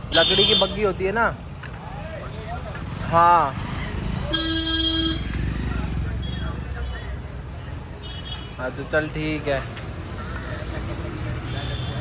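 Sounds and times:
faint voices of passers-by: 0.0 - 12.0
traffic engine rumble: 0.0 - 12.0.

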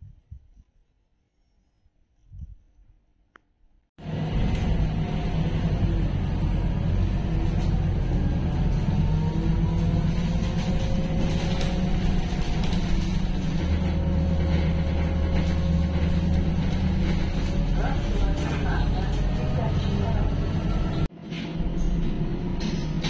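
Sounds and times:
bus rumble from inside: 4.0 - 23.0.

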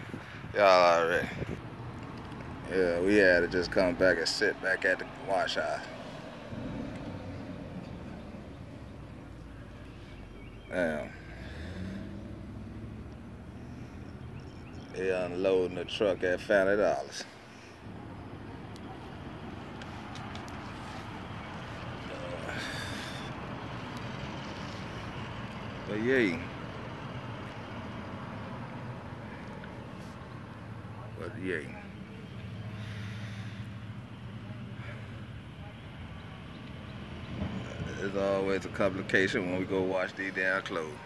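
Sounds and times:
low rumble of vehicle: 0.0 - 41.0.

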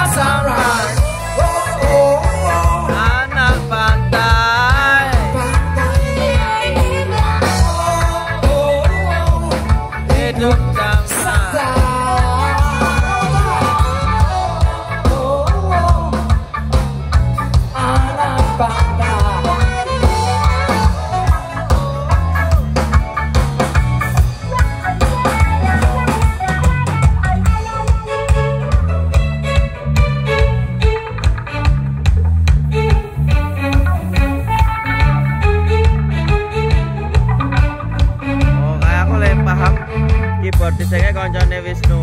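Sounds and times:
bass line: 0.0 - 42.0
drum kit beat: 0.0 - 42.0
electric guitar melody: 0.0 - 42.0
live band playing instrumental: 0.0 - 42.0.

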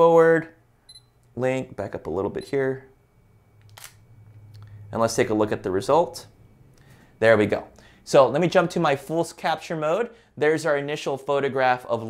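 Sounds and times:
camera shutter click: 3.7 - 4.0.

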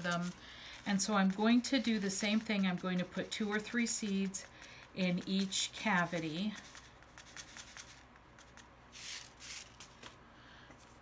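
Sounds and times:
paper seed packet rustling: 0.0 - 10.2.

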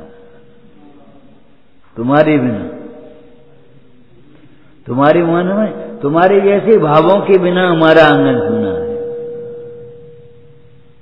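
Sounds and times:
steady ringing tone: 0.0 - 0.8, 5.4 - 11.0.

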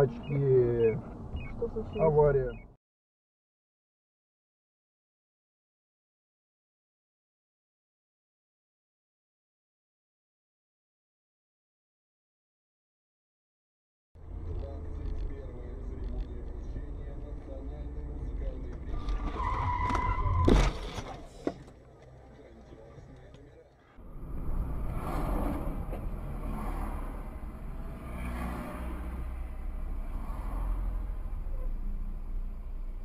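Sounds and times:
road noise: 0.0 - 2.8, 14.2 - 33.0
tyre squeal: 18.9 - 21.2
car crash impact: 19.0 - 21.7.

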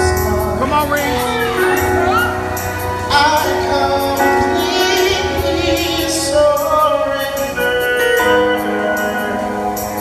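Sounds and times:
keyboard chords: 0.0 - 10.0.

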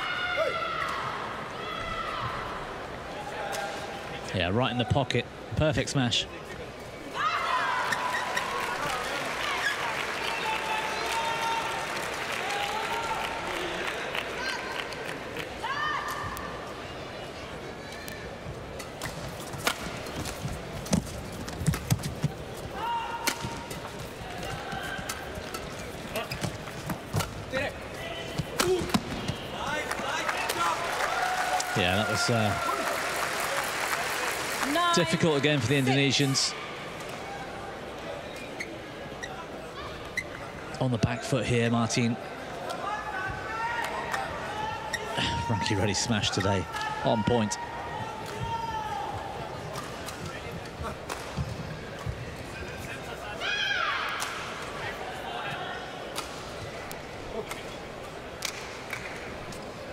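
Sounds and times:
crowd cheering: 7.2 - 16.2, 28.7 - 36.4.

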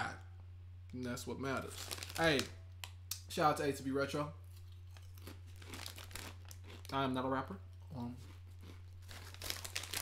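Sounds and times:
low electrical hum: 0.0 - 10.0
plastic bag crinkling: 1.6 - 2.6, 4.8 - 7.0, 8.5 - 10.0.

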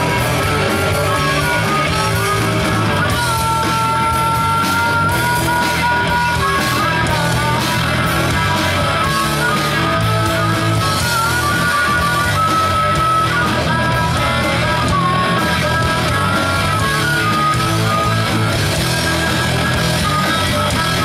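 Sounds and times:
harmonica lead line: 0.0 - 21.0
rock band playing: 0.0 - 21.0.

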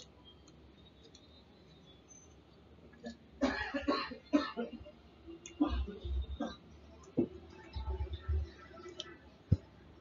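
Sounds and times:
person coughing: 3.4 - 4.8.

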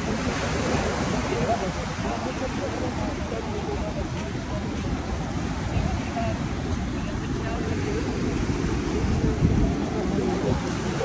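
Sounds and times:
indistinct chatter of many people: 0.0 - 11.0
wind and surf rumble: 0.0 - 11.0.

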